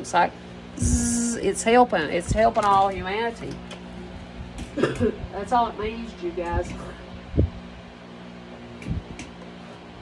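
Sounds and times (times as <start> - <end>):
room fan humming: 0.0 - 10.0.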